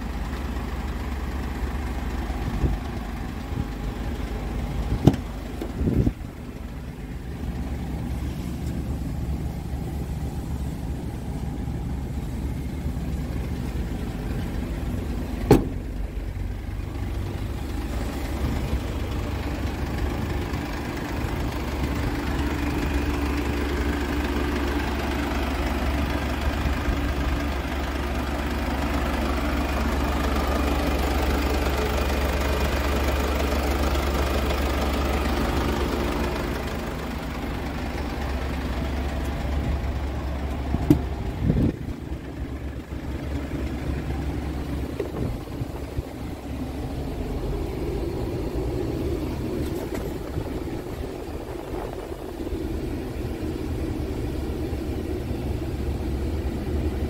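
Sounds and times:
van engine idling: 0:00.0 - 0:57.0.

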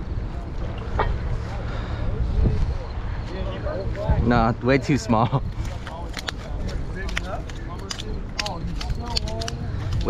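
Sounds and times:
people talking: 0:00.0 - 0:10.0
steady low rumble: 0:00.0 - 0:10.0.

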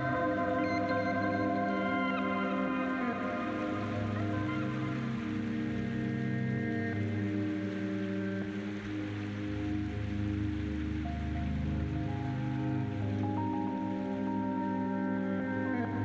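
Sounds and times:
slow ambient music: 0:00.0 - 0:16.0
soft steady hiss: 0:00.0 - 0:16.0.

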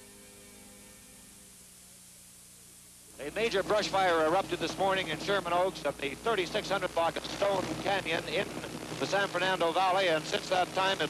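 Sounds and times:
faint mains hum: 0:00.0 - 0:11.0
tape hiss: 0:00.0 - 0:11.0.

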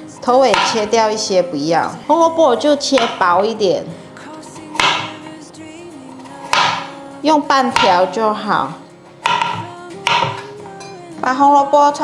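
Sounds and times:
soft background music: 0:00.0 - 0:12.0
knife cutting onto board: 0:00.5 - 0:01.0, 0:02.9 - 0:03.4, 0:04.7 - 0:05.3, 0:06.3 - 0:06.9, 0:07.8 - 0:08.1, 0:09.2 - 0:10.5.

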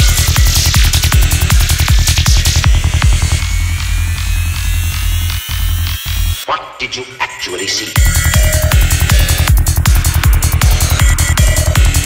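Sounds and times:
deep electronic bass drone: 0:00.0 - 0:06.4, 0:08.0 - 0:12.0
dark psytrance music: 0:00.0 - 0:12.0.

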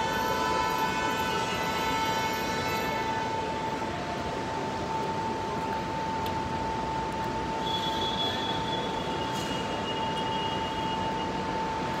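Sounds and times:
airport terminal background noise: 0:00.0 - 0:12.0.

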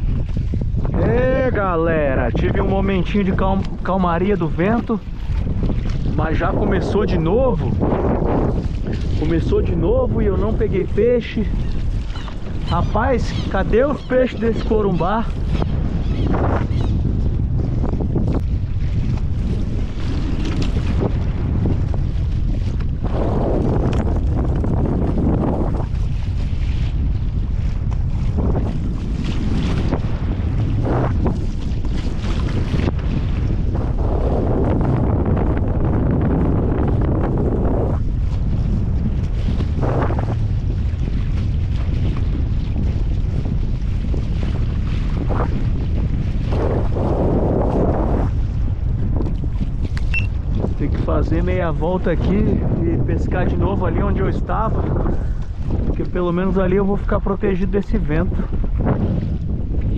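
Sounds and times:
waves lapping against hull: 0:00.0 - 0:59.9
wind buffeting microphone: 0:00.0 - 0:59.9.

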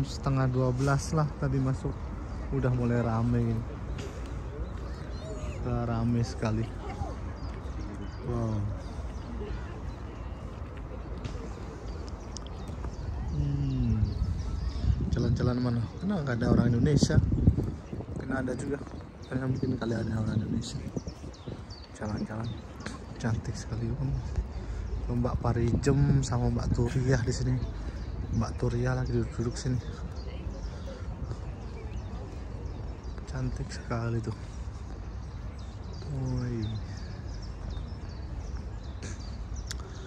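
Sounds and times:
faint voices of people: 0:00.0 - 0:40.0.

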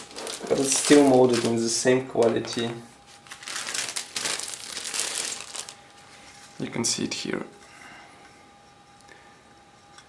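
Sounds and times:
plastic packaging crinkling: 0:00.0 - 0:05.9.

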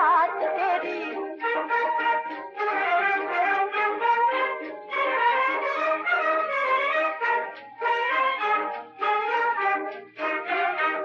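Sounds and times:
orchestra playing: 0:00.0 - 0:11.0.

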